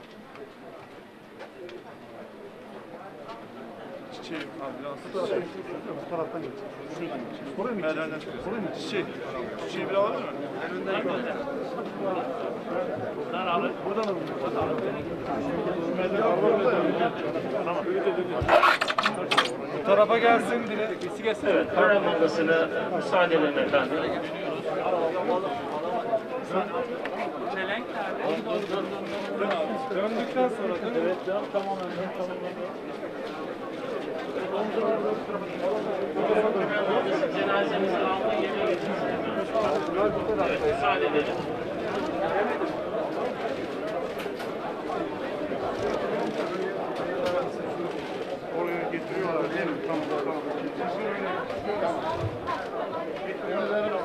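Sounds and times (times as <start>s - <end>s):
crowd murmur: 0.0s - 54.0s.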